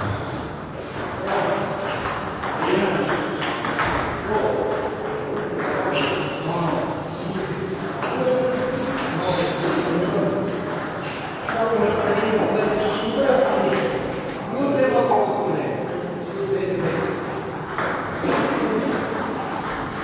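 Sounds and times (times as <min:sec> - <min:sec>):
people talking: 0:01.2 - 0:03.3, 0:03.9 - 0:10.8, 0:11.5 - 0:19.8.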